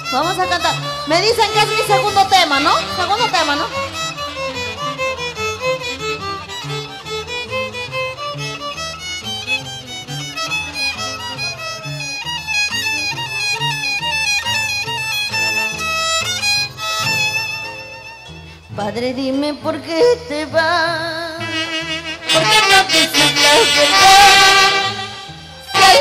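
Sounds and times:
violin melody: 0.0s - 26.0s
saxophones: 21.4s - 26.0s.

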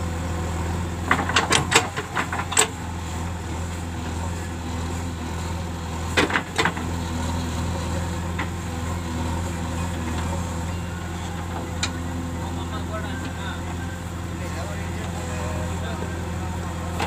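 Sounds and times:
diesel engine running under load: 0.0s - 17.0s.

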